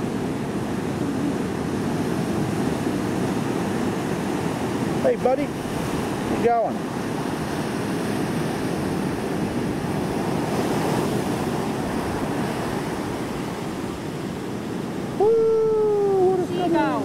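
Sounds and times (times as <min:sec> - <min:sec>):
waves breaking on a beach: 0:00.0 - 0:17.0.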